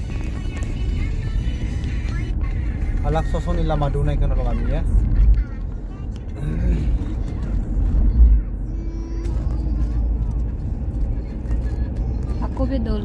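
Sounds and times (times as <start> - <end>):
car engine and tyre rumble: 0.0 - 13.0
voice: 3.1 - 5.4, 11.3 - 13.0.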